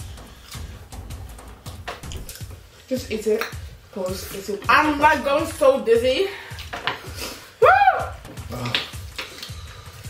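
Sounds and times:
wet eating clicks and smacks: 1.7s - 2.6s, 8.4s - 9.6s.

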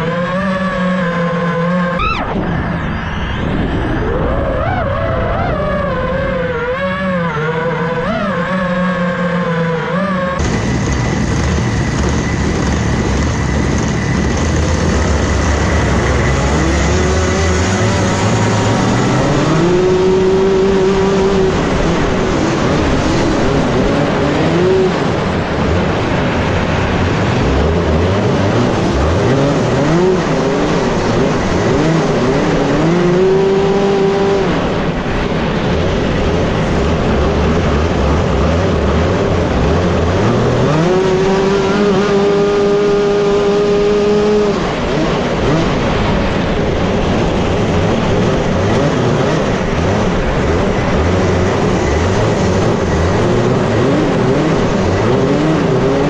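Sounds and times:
wavering pitched sound: 0.0s - 23.8s
kart engine revving: 0.0s - 56.0s
other kart engines: 0.0s - 56.0s.

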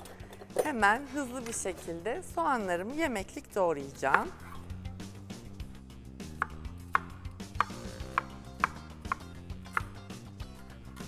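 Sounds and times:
knife chopping on wooden board: 6.3s - 10.0s.

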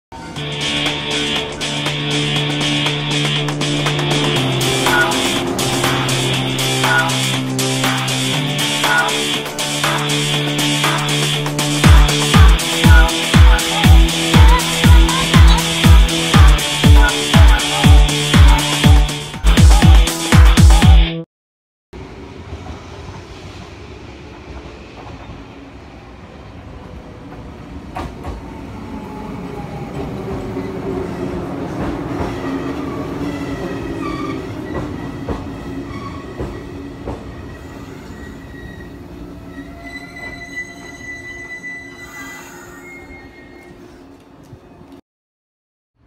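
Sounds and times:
electric train rolling past: 0.2s - 19.4s, 22.0s - 45.0s
high brake squeal: 33.5s - 44.1s.

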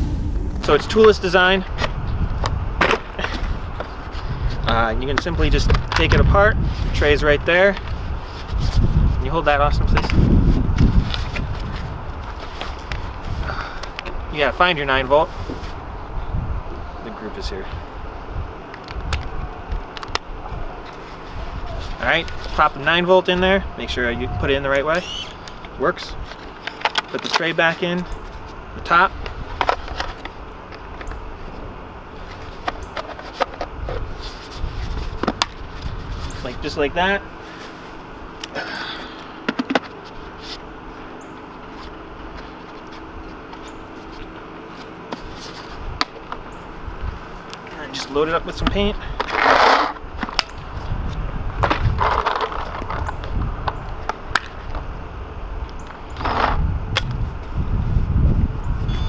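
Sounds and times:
wind on microphone: 0.0s - 14.4s, 15.3s - 17.1s, 23.4s - 25.4s, 50.0s - 59.0s
faint steady hum: 0.0s - 59.0s.

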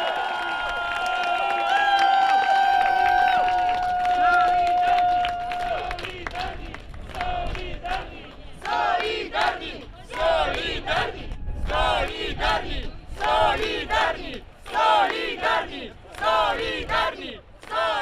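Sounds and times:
crowd chanting in unison: 5.7s - 18.0s.

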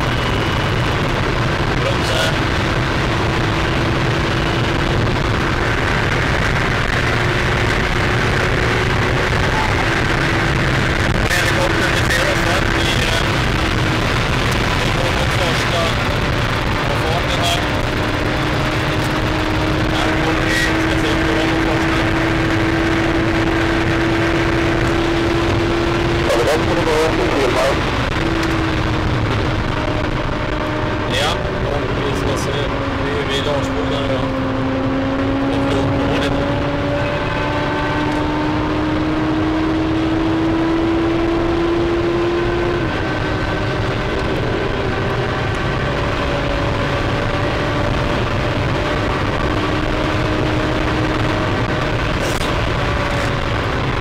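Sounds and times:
car engine humming: 0.0s - 54.0s
wind and road noise: 0.0s - 54.0s.

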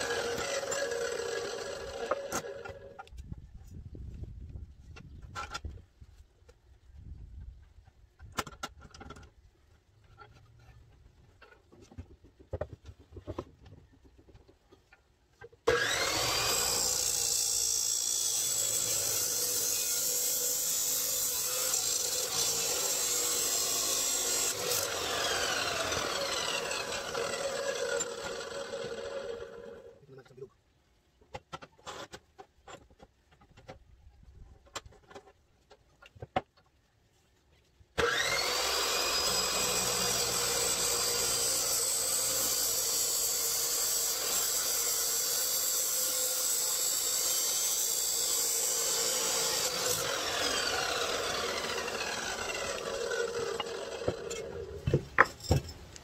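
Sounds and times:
cut-off saw whining: 0.0s - 3.0s, 15.7s - 29.9s, 38.0s - 54.8s
saw cutting steel pipe: 0.0s - 3.0s, 15.7s - 29.9s, 38.0s - 54.8s.

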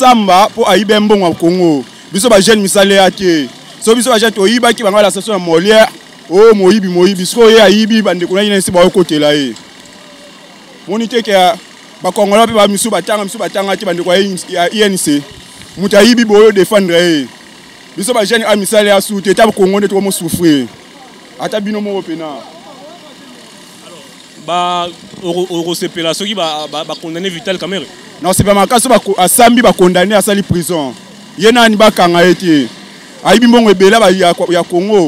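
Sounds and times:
man speaking: 0.0s - 9.6s, 10.8s - 17.4s, 18.0s - 20.8s, 21.4s - 35.0s
faint street background: 0.0s - 35.0s
men talking: 0.0s - 35.0s.

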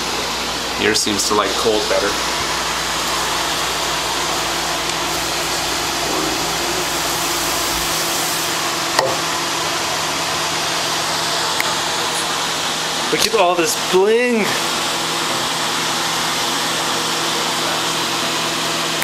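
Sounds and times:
cooling fans rushing: 0.0s - 19.0s.

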